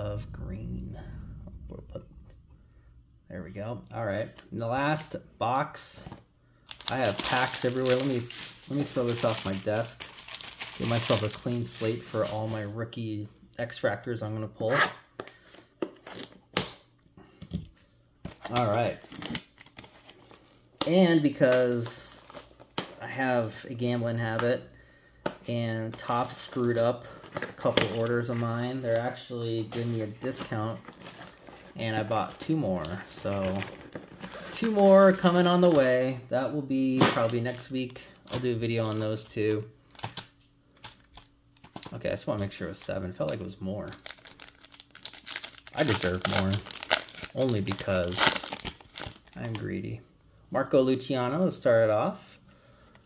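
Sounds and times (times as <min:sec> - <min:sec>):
card packs rustling: 0:06.0 - 0:12.7, 0:18.3 - 0:24.4, 0:25.5 - 0:49.9
foil card packs clicking: 0:06.7 - 0:11.7, 0:43.2 - 0:49.7.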